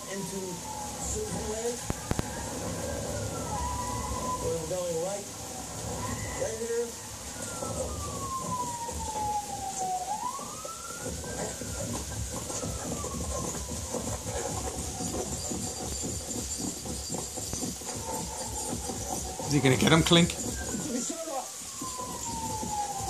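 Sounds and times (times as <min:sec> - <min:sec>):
police siren wailing through tv speakers: 0:00.0 - 0:23.0.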